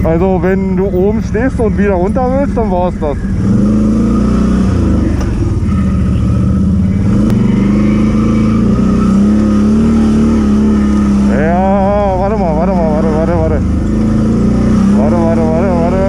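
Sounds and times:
quad engine running: 0.0 - 16.0.

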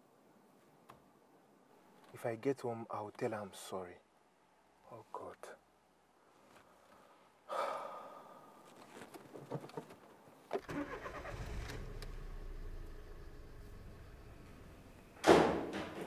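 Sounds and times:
car engine starting and idling: 10.6 - 15.2.

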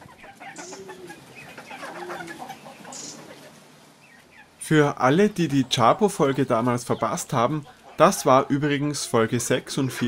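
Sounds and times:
chickens clucking softly: 0.0 - 4.6, 5.4 - 10.0.

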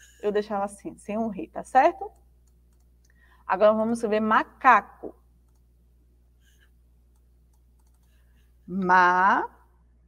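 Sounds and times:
faint computer clicks: 2.1 - 3.2, 5.4 - 5.7, 6.5 - 8.2.

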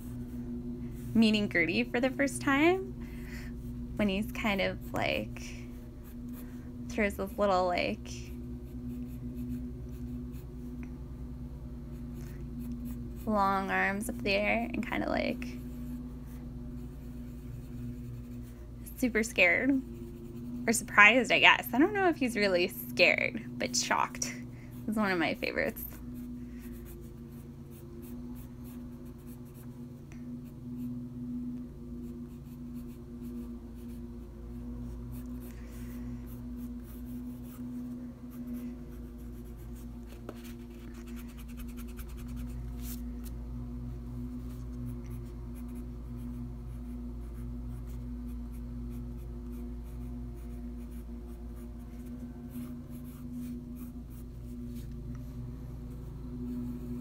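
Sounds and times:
steady low hum: 0.0 - 57.0
pencil scratching on paper: 11.9 - 13.4, 16.8 - 21.4, 25.3 - 29.8, 32.0 - 43.0, 44.4 - 54.9.

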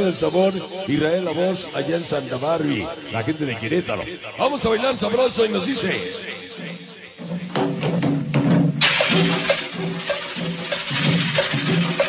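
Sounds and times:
cumbia music: 6.2 - 12.0
loud high hiss: 8.8 - 12.0.

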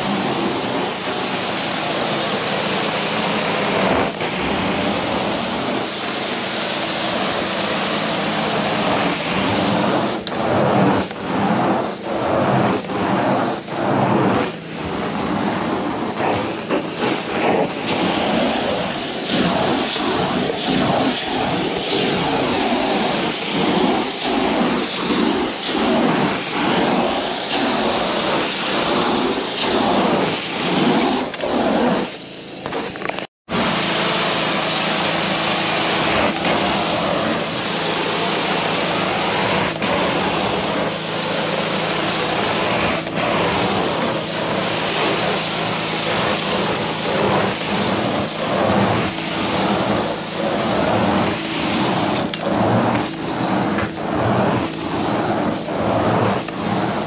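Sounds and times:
carpet cleaner suction wand: 0.0 - 57.0.

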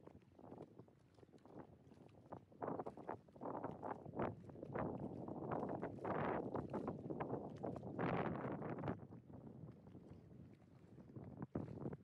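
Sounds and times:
wind buffeting microphone: 0.3 - 12.0.

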